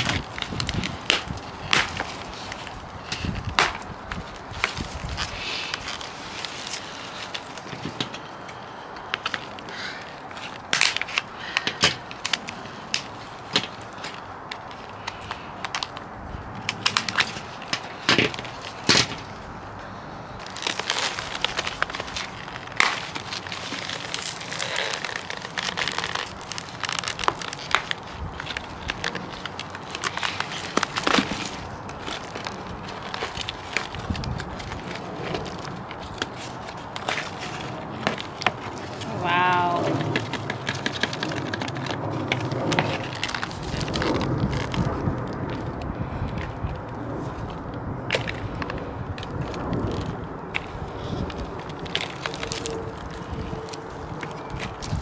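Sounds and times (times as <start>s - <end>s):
scissors cutting plastic: 0.0s - 8.2s, 20.4s - 45.8s, 48.1s - 55.0s
compost rustling: 0.0s - 55.0s
plastic pot crackling and snapping: 0.0s - 55.0s.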